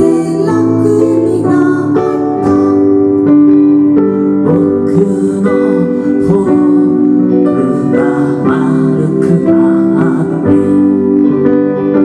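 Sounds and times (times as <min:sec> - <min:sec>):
electric guitar playing: 0:00.0 - 0:12.0
keyboard piano chords: 0:00.0 - 0:12.0.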